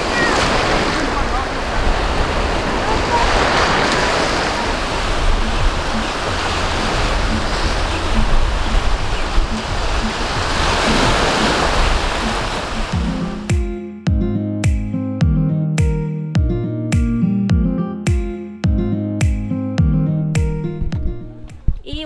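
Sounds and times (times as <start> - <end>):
waves breaking on beach: 0.0 - 13.5
wind: 0.0 - 13.5, 20.2 - 22.0
plucked guitar tune: 4.6 - 22.0.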